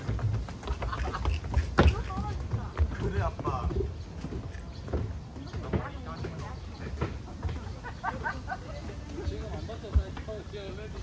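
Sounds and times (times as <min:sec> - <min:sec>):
footsteps on stone paving: 0:00.0 - 0:11.0.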